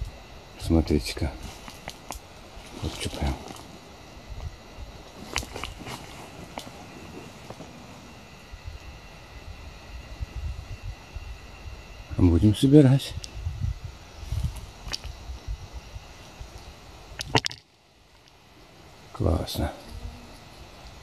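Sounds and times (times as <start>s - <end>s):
rustling in leaf litter: 1.4s - 3.8s, 5.0s - 8.2s
sharp twig-like clicks: 1.6s - 2.3s, 14.8s - 15.2s, 17.1s - 18.4s.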